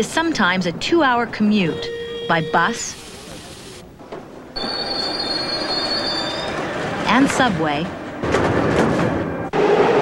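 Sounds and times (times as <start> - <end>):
rail car rumble: 3.0 - 10.0
steel wheels squealing on rails: 4.6 - 6.9.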